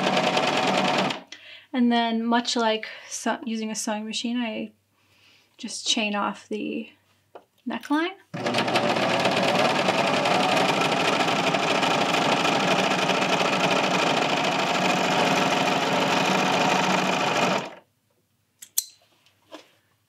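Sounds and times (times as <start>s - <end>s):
serger sewing machine running: 0.0s - 1.2s, 8.4s - 17.8s.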